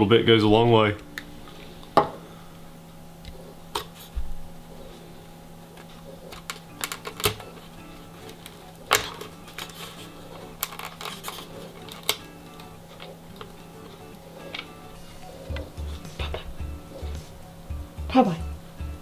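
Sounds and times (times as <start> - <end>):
quiet background music: 0.0 - 19.0.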